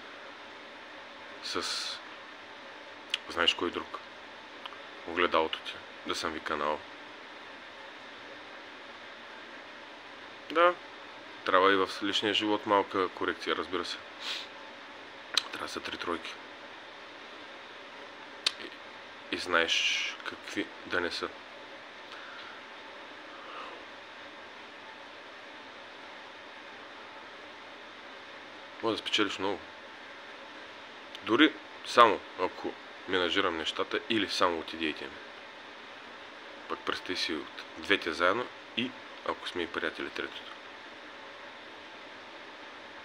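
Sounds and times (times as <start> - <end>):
low hiss of room noise: 0.0 - 43.0.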